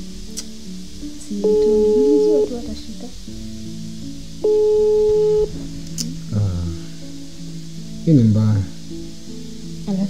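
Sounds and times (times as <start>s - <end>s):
soft synth chords: 0.7s - 10.0s
loud steady tone: 1.4s - 2.7s, 4.4s - 5.6s.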